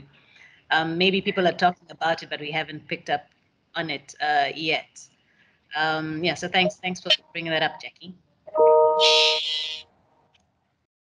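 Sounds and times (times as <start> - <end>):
chime-like tone: 8.6 - 9.4.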